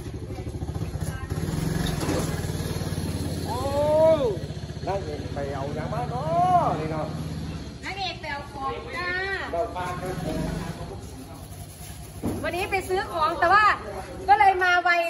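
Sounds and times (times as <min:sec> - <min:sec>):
engine idling: 0:00.0 - 0:12.2.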